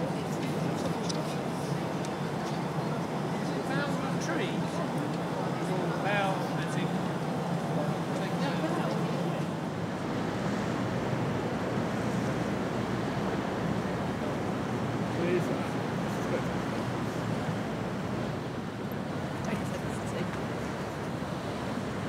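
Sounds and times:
faint voices of passers-by: 0:00.0 - 0:22.0
wind and water hiss: 0:00.0 - 0:22.0.

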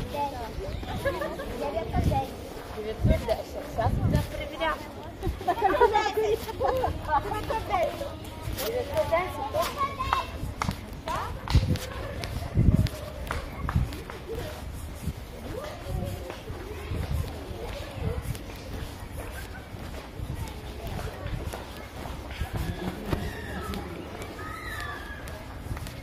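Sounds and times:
faint voices talking: 0:00.0 - 0:26.0
footsteps on asphalt: 0:00.0 - 0:26.0.

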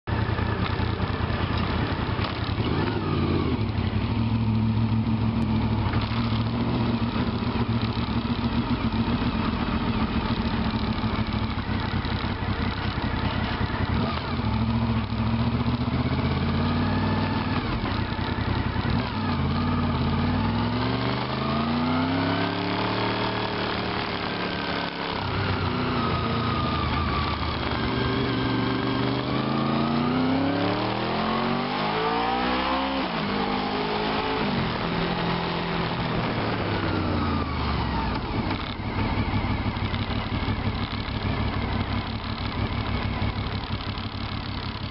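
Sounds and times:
motorcycle engine accelerating: 0:00.1 - 0:44.9.

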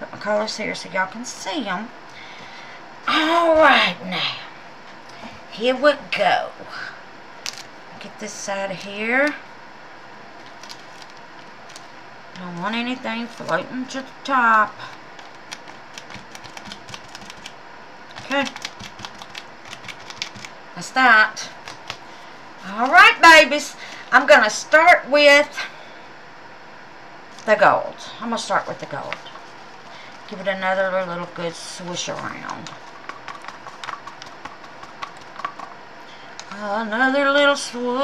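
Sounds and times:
stick clicking against cup: 0:15.2 - 0:17.5, 0:18.1 - 0:20.5, 0:32.4 - 0:35.7
stick stirring resin in cup: 0:15.2 - 0:17.5, 0:18.1 - 0:20.5, 0:32.0 - 0:35.8.

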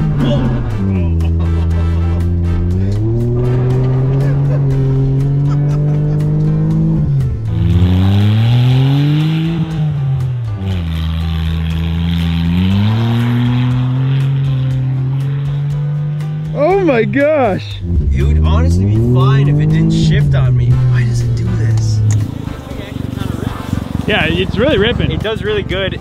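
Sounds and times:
small car engine revving: 0:00.0 - 0:16.6, 0:17.7 - 0:25.7
tyres spinning through snow: 0:22.9 - 0:25.2.

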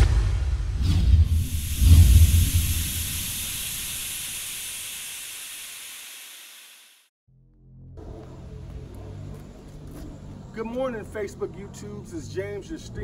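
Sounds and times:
deep booming hit: 0:00.0 - 0:03.2
long hiss: 0:01.3 - 0:07.1.

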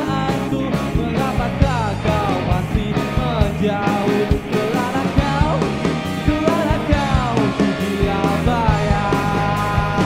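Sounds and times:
bass guitar: 0:00.0 - 0:10.0
drums with steady beat: 0:00.0 - 0:10.0
electric guitars: 0:00.0 - 0:10.0
man singing: 0:00.0 - 0:10.0.

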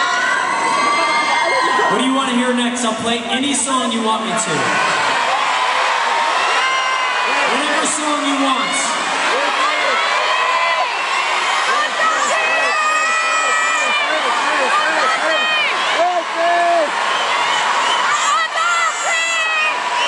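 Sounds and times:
crowd cheering and screaming: 0:00.0 - 0:20.0
fans shouting and squealing: 0:00.0 - 0:20.0.

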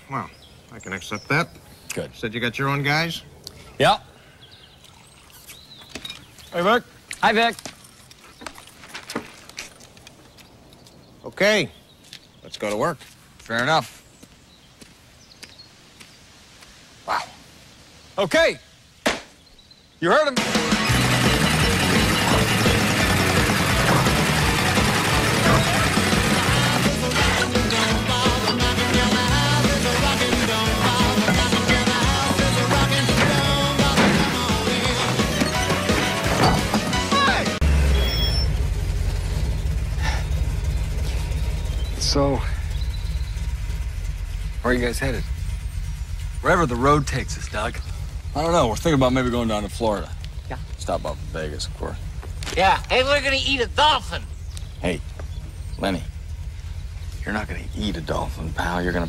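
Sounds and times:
car engine idling: 0:20.4 - 0:59.0.

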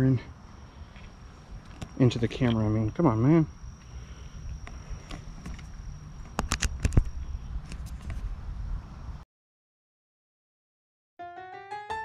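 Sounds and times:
high insect tone: 0:00.0 - 0:09.2
camera being handled: 0:04.7 - 0:07.1.

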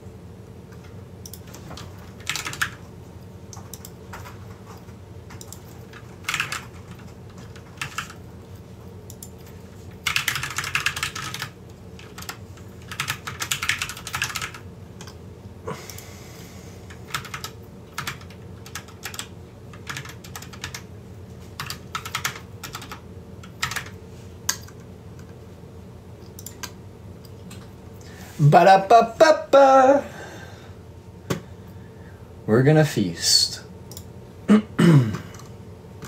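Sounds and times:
steady low hum: 0:00.0 - 0:36.0
typing on computer keyboard: 0:00.8 - 0:02.8, 0:03.5 - 0:08.2, 0:09.1 - 0:15.2, 0:17.1 - 0:20.9, 0:21.6 - 0:25.3.

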